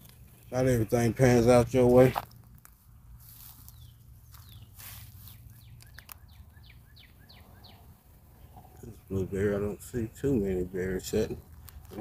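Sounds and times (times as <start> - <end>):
faint footsteps on mulch: 0.0 - 7.3
songbird chirping: 2.8 - 11.8.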